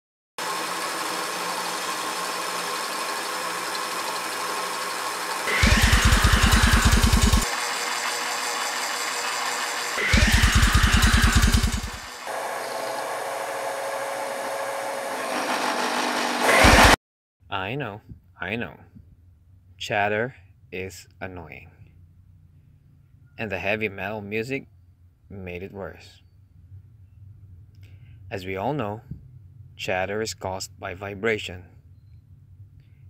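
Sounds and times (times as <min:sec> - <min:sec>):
cutter chattering on steel: 0:00.4 - 0:13.6
milling machine running: 0:00.4 - 0:17.0.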